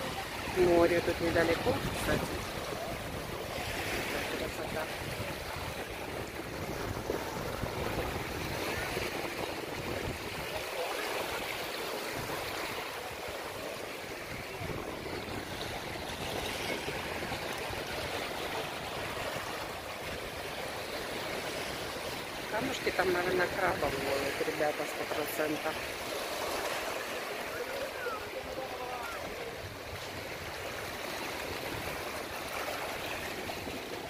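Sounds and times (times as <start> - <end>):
waves lapping on stony shore: 0.0 - 34.0.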